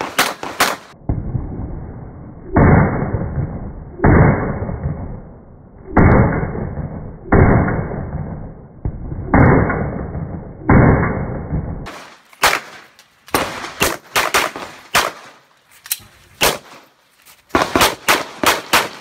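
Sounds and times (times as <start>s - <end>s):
pistol shots: 0.0s - 1.0s, 11.8s - 15.4s, 16.4s - 16.8s, 17.5s - 19.0s.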